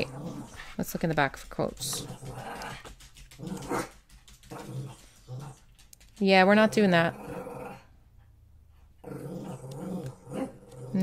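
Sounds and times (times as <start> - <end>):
dog growling: 0.0 - 0.9, 1.7 - 8.0, 9.0 - 11.0.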